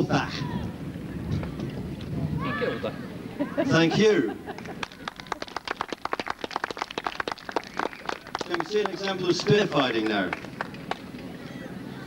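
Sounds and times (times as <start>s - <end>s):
audience applause: 4.5s - 11.0s.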